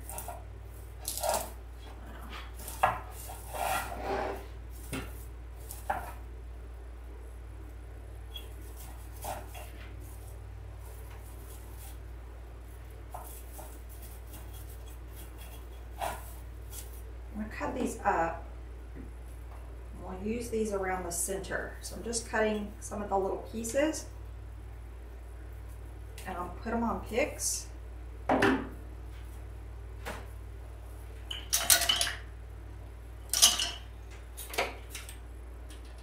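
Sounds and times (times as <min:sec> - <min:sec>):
artificial pine branches rustling: 0:00.0 - 0:06.3, 0:08.2 - 0:17.7
steady low hum: 0:00.0 - 0:36.0.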